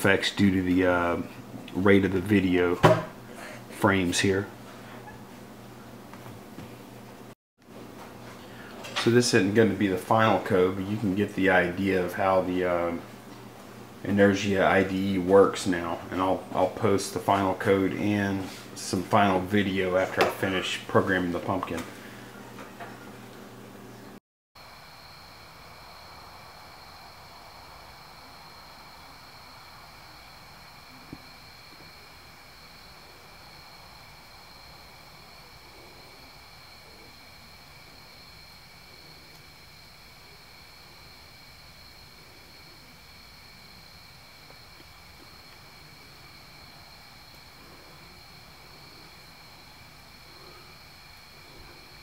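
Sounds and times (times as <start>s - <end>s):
steady low hiss: 0.0s - 52.0s.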